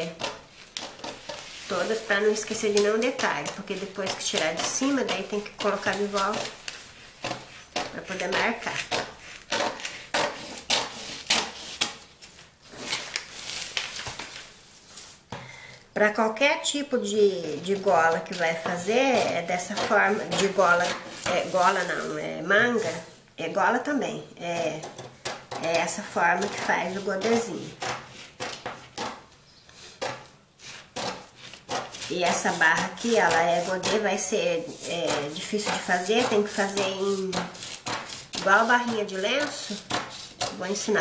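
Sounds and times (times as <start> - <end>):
scissors snipping paper: 30.6 - 41.0.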